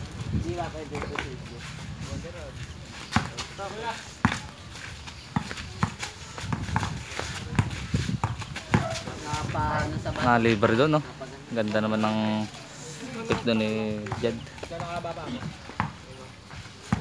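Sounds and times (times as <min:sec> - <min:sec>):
sandals slapping and scuffing: 0:03.0 - 0:09.5
basketball bouncing on concrete: 0:03.1 - 0:09.5, 0:13.2 - 0:17.0.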